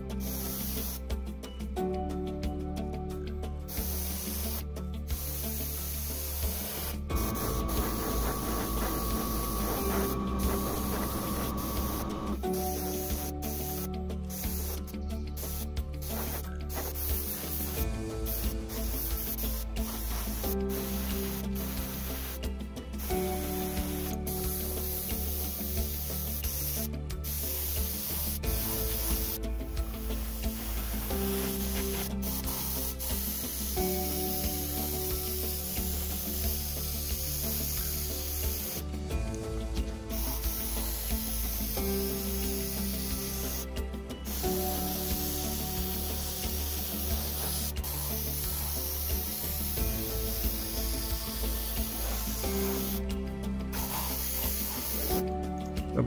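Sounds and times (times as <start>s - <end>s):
background music: 0.0s - 56.0s
spray gun hissing: 0.2s - 1.0s, 3.7s - 22.6s, 23.2s - 38.9s, 40.0s - 53.1s, 53.7s - 55.3s.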